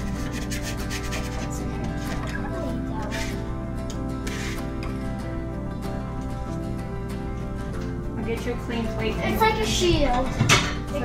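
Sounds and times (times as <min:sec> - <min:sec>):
spatula scraping: 0:00.0 - 0:03.5, 0:04.2 - 0:05.0
background music sustained notes: 0:00.0 - 0:11.0.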